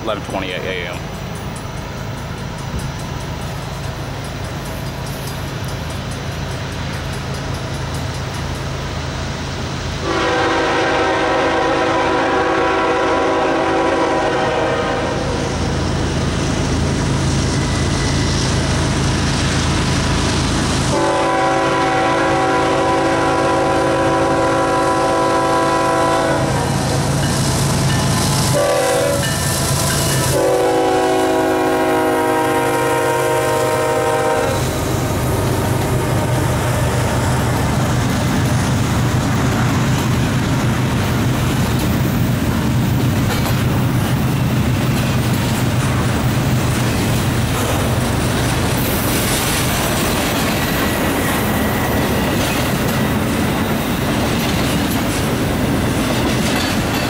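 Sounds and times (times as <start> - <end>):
diesel locomotive rumble: 0.0 - 57.0
train wheels rolling: 0.0 - 57.0
locomotive air horn blasts: 10.0 - 15.4, 20.9 - 26.7, 28.5 - 29.4, 30.3 - 34.9.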